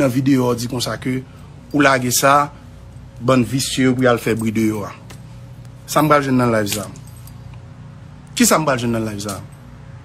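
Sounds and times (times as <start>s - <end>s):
man speaking: 0.0s - 2.6s, 3.2s - 5.1s, 5.9s - 7.0s, 8.4s - 9.5s
low background hum: 0.0s - 10.0s.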